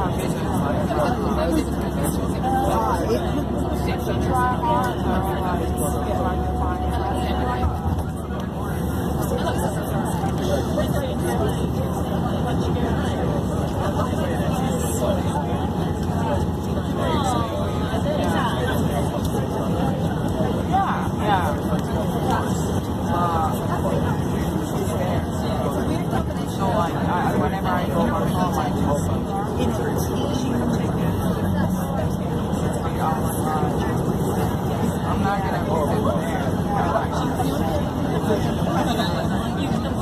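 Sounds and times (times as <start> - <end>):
coach engine and road rumble: 0.0 - 40.0
indistinct voices: 0.0 - 40.0
people talking: 0.0 - 40.0.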